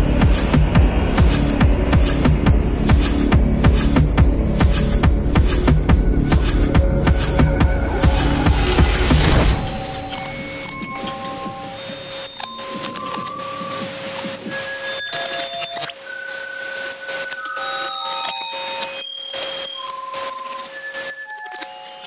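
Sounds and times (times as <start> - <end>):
steady held tone: 0.0 - 21.2
experimental electronic music: 0.0 - 22.0.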